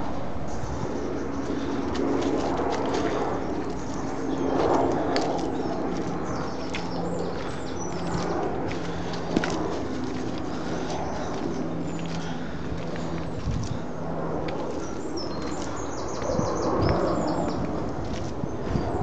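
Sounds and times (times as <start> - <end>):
footsteps on muddy leafy path: 0.0 - 19.0.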